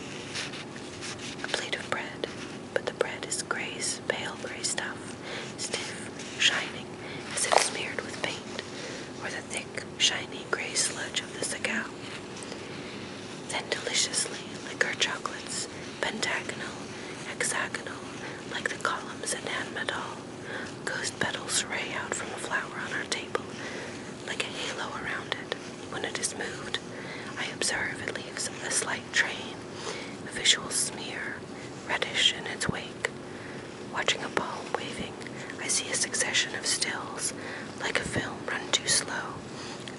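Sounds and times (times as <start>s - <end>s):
faint steady hum: 0.0s - 39.9s
person whispering: 1.4s - 12.1s, 13.4s - 20.2s, 20.8s - 23.6s, 24.2s - 29.6s, 30.2s - 33.2s, 33.9s - 39.4s.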